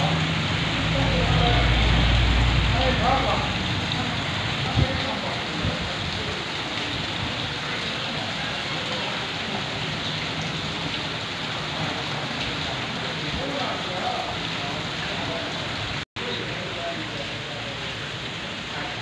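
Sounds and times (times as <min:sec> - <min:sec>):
rain falling on water: 0:00.0 - 0:19.0.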